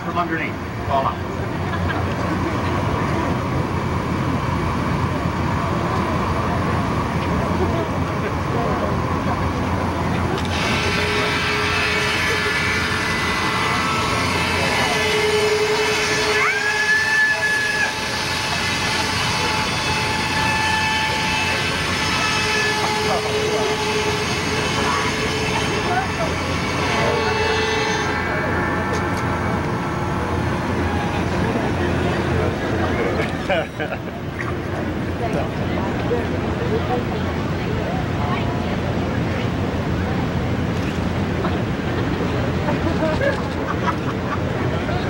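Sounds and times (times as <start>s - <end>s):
buzz saw whirring: 10.1s - 33.6s.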